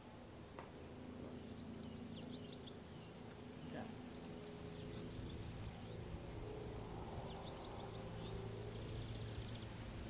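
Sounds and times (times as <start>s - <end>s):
small bird chirping: 0.3s - 9.8s.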